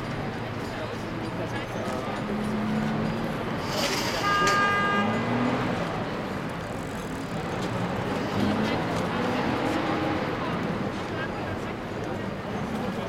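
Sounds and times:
heavy vehicles driving off: 0.0s - 13.0s
horn toot: 4.0s - 5.5s.

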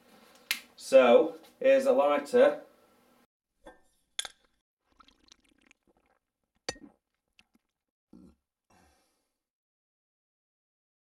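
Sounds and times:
glass clinking: 6.7s - 7.0s.

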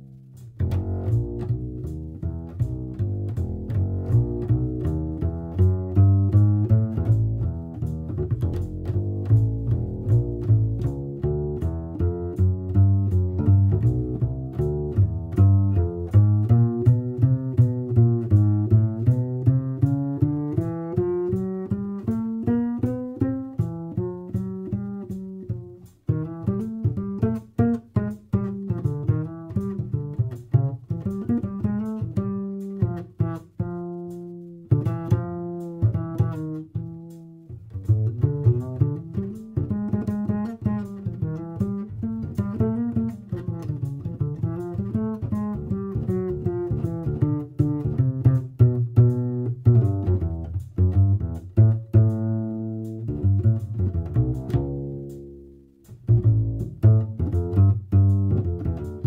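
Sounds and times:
double bass plucked jazz line: 0.0s - 59.0s.

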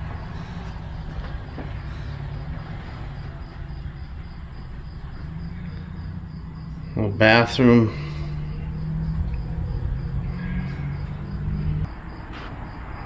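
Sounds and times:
crickets chirping: 0.0s - 13.0s.

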